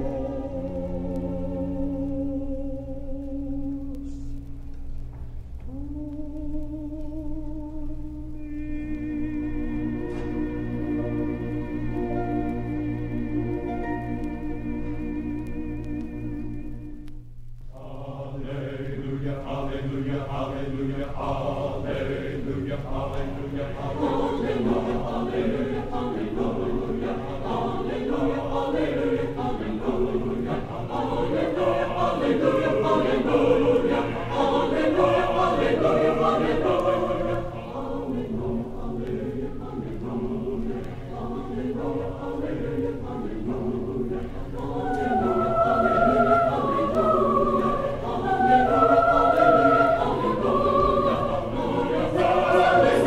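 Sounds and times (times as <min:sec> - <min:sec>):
choir singing: 0:00.0 - 0:04.6, 0:05.7 - 0:17.1, 0:17.7 - 0:53.0.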